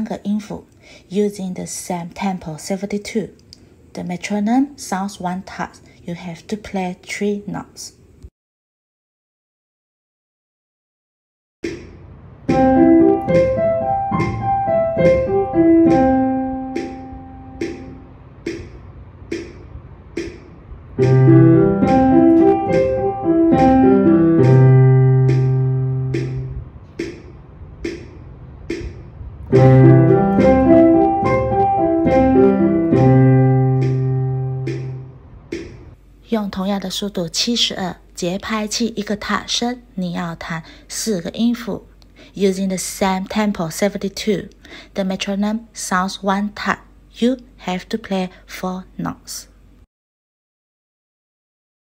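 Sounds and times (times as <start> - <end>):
piano playing arpeggios: 12.5 - 18.1, 21.0 - 26.6, 29.5 - 35.2
metronome ticking: 12.5 - 27.2, 29.5 - 35.8.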